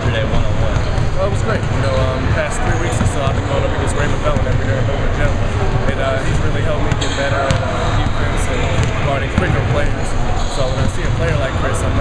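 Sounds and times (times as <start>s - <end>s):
basketballs bouncing on wooden floor: 0.0s - 4.9s, 6.6s - 9.8s, 10.6s - 12.0s
people talking: 0.0s - 12.0s.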